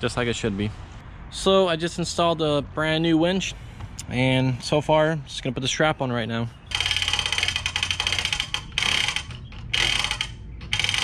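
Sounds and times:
winch ratchet clicking: 0:06.7 - 0:11.0.

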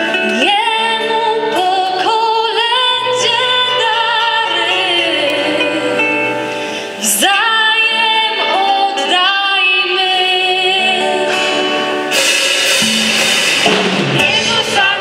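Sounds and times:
band accompaniment: 0:00.0 - 0:15.0
women singing a carol: 0:00.3 - 0:06.2, 0:14.2 - 0:15.0
cymbal ringing: 0:11.3 - 0:15.0.

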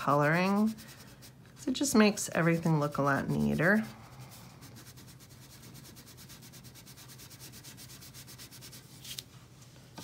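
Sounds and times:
crayon rubbing on paper: 0:00.0 - 0:08.9.

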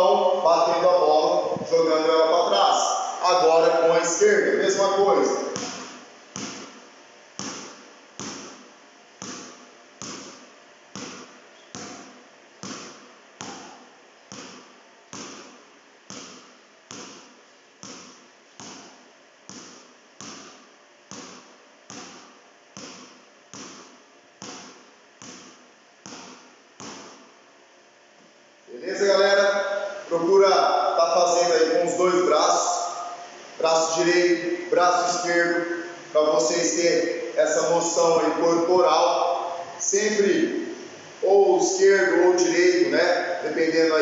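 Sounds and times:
basketball bouncing on hard floor: 0:05.5 - 0:27.3.

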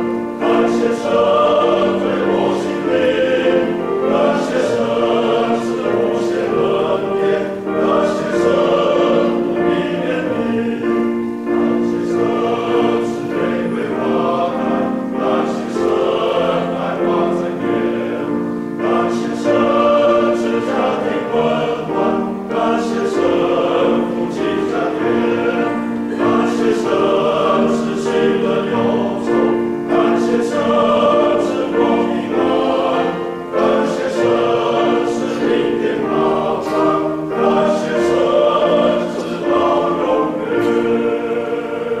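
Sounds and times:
men's choir singing a hymn: 0:00.0 - 0:42.0.

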